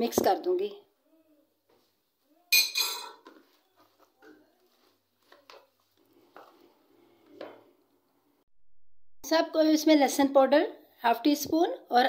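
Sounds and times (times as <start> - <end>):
kitchen utensils clattering: 2.6 - 3.2.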